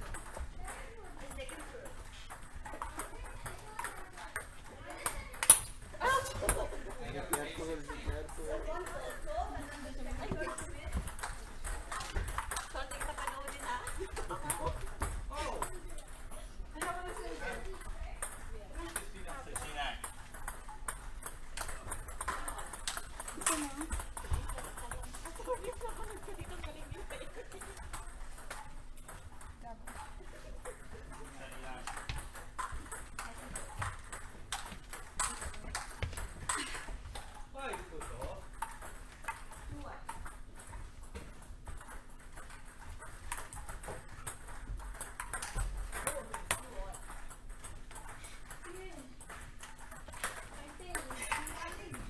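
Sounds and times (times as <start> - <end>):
table tennis ball clicks: 10.2 - 52.0.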